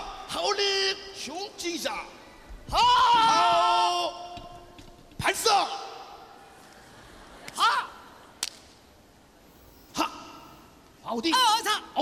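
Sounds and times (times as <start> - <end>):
man yelling: 2.7 - 4.4, 5.2 - 6.2, 7.6 - 8.0, 9.9 - 12.0.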